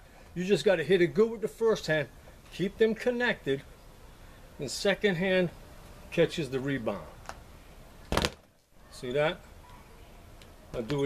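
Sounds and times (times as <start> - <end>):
speed bag thuds: 8.1 - 8.4.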